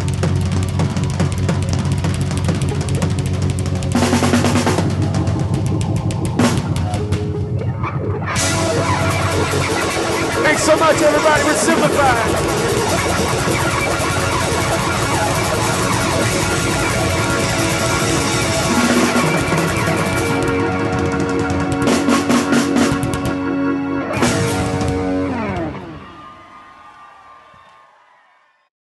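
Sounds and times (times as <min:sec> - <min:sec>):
bass guitar: 0:00.0 - 0:26.3
electric and acoustic guitars: 0:00.0 - 0:26.5
drums: 0:00.0 - 0:28.1.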